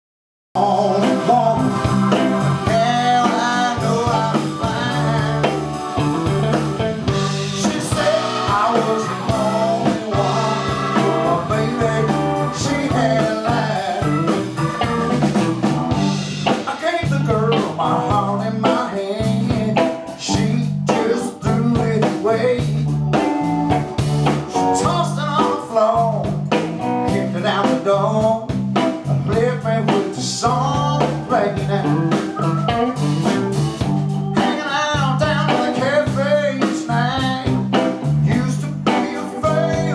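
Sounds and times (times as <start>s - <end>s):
blues band playing: 0.6s - 39.9s.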